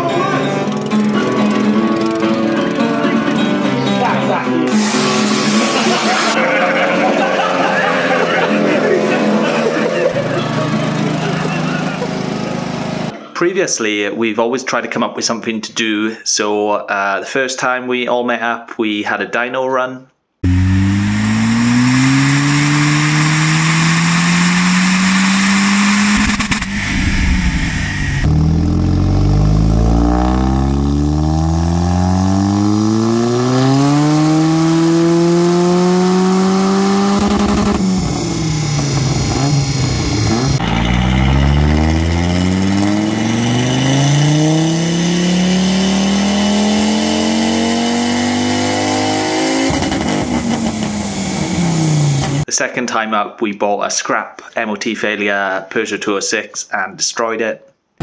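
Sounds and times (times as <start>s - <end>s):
car engine revving: 0.6s - 13.1s, 20.4s - 52.5s.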